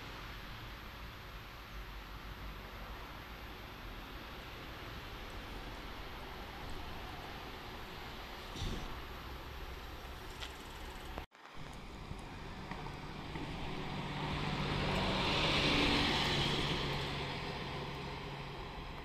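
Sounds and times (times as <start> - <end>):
idling bus rumble: 0.0 - 19.0
bus driving past: 1.9 - 19.0.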